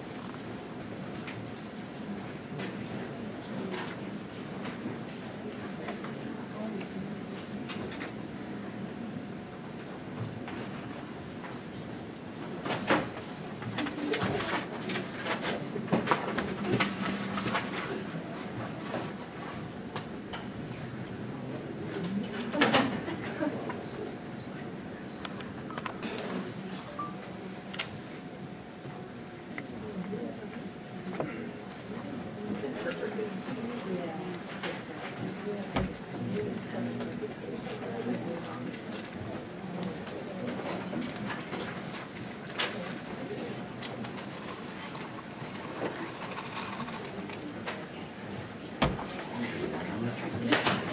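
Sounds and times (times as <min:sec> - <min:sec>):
low murmur of voices: 0:00.0 - 0:50.9.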